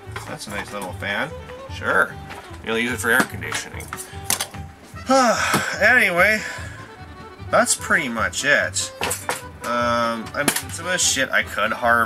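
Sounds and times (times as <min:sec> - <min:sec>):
man sighing: 0:05.0 - 0:06.9.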